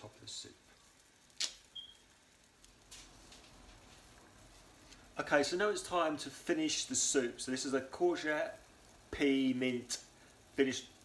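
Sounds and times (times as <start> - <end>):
faint low room hum: 0.0 - 11.0
sharp click: 1.4 - 1.7.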